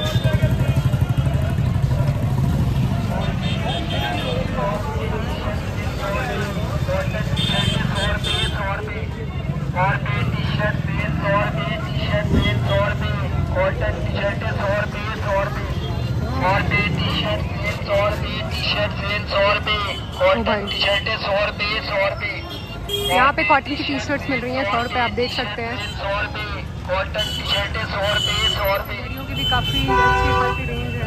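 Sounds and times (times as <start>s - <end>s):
motorcycle and traffic engines rumbling: 0.0s - 31.0s
voices of vendors and shoppers: 0.0s - 31.0s.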